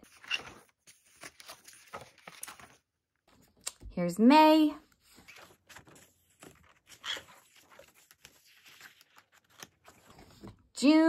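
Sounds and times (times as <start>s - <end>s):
paper pages flipping: 0.0s - 3.7s, 4.9s - 10.6s.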